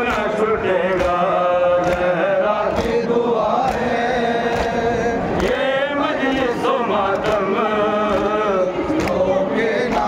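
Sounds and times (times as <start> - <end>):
man chanting through a microphone: 0.0 - 10.0.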